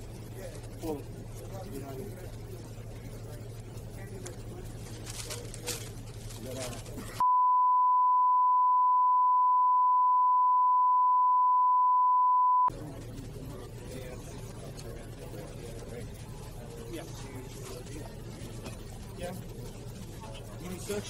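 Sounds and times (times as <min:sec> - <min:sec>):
censor bleep tone: 0:07.2 - 0:12.7.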